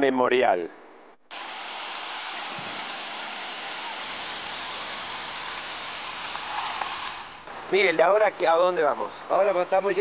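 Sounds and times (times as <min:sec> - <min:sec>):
mountain stream over rocks: 0:01.3 - 0:08.5.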